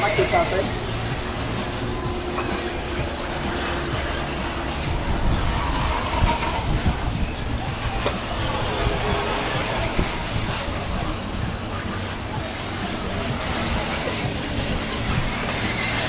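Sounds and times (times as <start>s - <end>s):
faint motor whines: 0.0s - 16.0s
radio-controlled cars racing: 0.0s - 16.0s.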